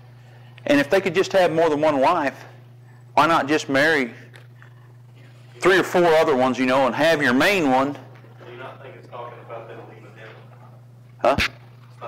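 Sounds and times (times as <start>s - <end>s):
people talking: 5.6s - 10.6s.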